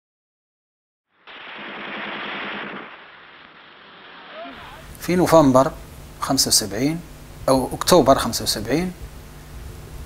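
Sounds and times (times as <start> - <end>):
machine-gun fire: 1.3 - 5.0.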